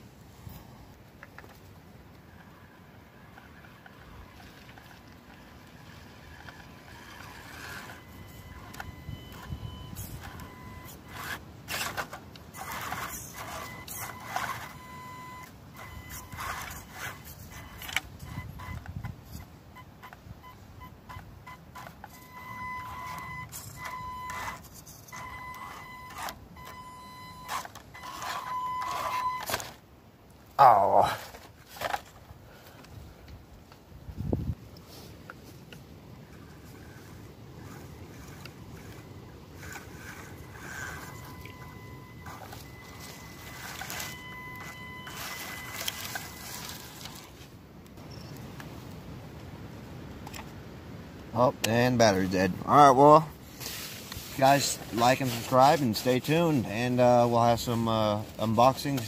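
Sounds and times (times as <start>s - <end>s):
tyres scraping over root: 3.2s - 19.4s, 21.8s - 29.8s, 30.6s - 32.8s, 34.8s - 47.6s, 51.6s - 59.0s
electric motor and gears whining: 5.3s - 19.0s, 21.6s - 29.8s, 36.4s - 47.4s
crackling leaves: 34.6s - 50.6s, 52.3s - 59.0s.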